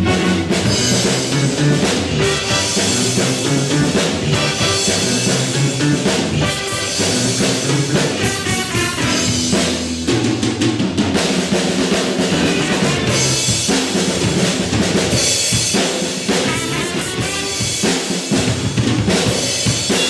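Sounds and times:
clarinet: 0.0s - 9.6s, 12.3s - 13.6s, 16.4s - 17.8s
trumpets: 0.0s - 9.8s, 12.3s - 13.7s, 16.3s - 18.2s
drum kit: 0.0s - 20.0s
electric guitars: 0.0s - 20.0s.

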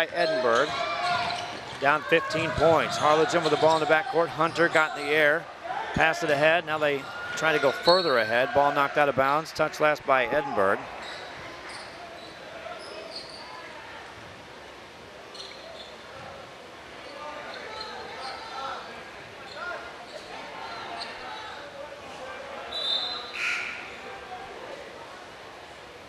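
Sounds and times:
murmur of crowd voices: 0.0s - 26.0s
basketball bouncing: 0.6s - 3.9s.

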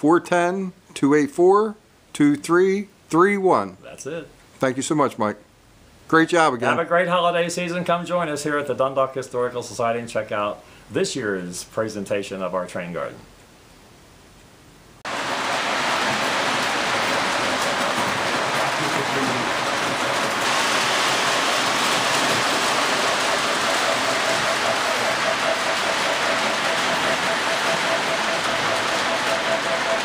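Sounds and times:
model trains rushing rumble: 15.1s - 30.0s.

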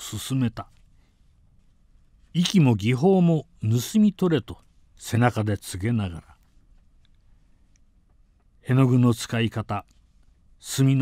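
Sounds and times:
man speaking: 0.0s - 0.8s, 2.3s - 6.4s, 8.6s - 9.9s, 10.6s - 11.0s
faint small clicks: 6.4s - 8.5s.

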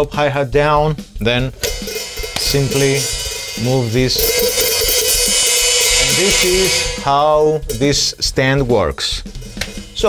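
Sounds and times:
hi-hat cymbals shimmering: 0.8s - 10.0s.

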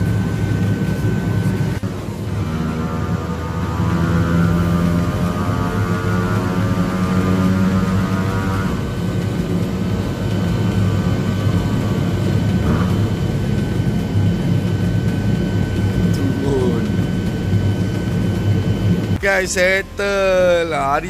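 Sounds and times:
small motorcycle engine running: 0.0s - 21.0s.

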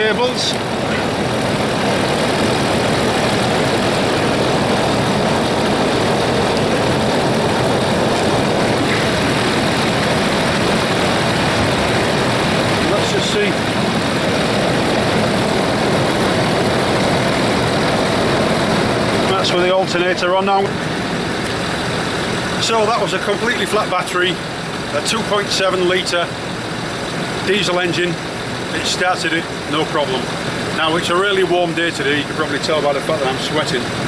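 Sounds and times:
diesel engine idling: 0.0s - 34.0s.

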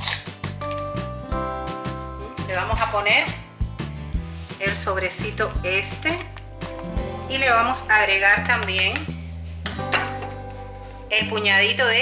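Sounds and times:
steady beat: 6.5s - 7.9s
held synth notes: 6.6s - 8.4s.

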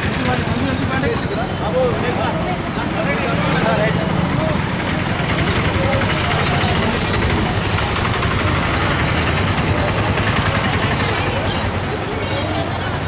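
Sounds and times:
crowd voices: 0.0s - 13.0s
vehicle engine idling: 0.0s - 13.0s.

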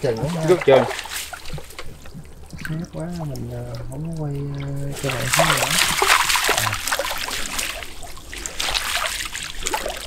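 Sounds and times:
water splashing and trickling: 0.0s - 10.0s.

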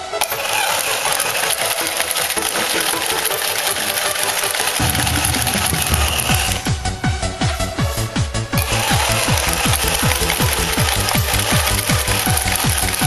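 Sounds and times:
plastic gear clatter: 0.2s - 6.6s, 8.6s - 13.0s
small toy motor running: 0.2s - 6.6s, 8.6s - 13.0s.

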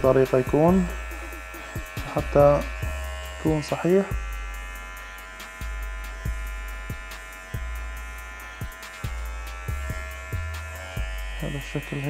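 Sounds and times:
electric hair clipper buzzing: 0.0s - 12.0s.

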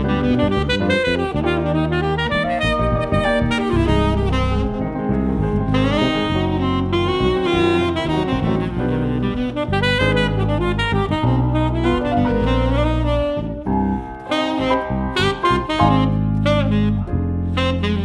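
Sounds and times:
low bass and cello notes: 0.0s - 18.0s
piano: 0.0s - 18.0s
tenor saxophone jazz line: 0.0s - 18.0s.

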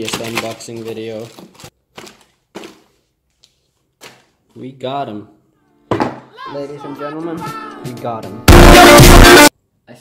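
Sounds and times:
cardboard packaging rustling: 0.0s - 4.5s.

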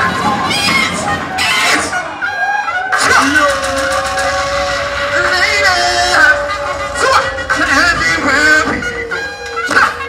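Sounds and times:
dancehall backing music: 0.0s - 10.0s
long held tone: 3.5s - 10.0s.

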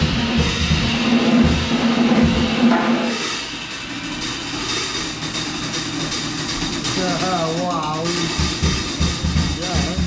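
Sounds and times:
jazz drum kit with cymbals: 0.0s - 10.0s.

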